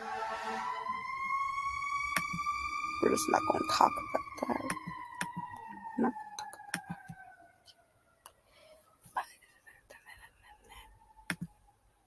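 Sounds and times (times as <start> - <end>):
steady high tone slowly rising: 0.0 - 7.8.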